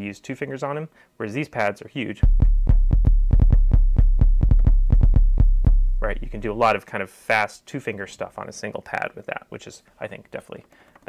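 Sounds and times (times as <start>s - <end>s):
long low bass note: 2.2s - 6.6s
finger drumming on drum pads: 2.2s - 6.7s.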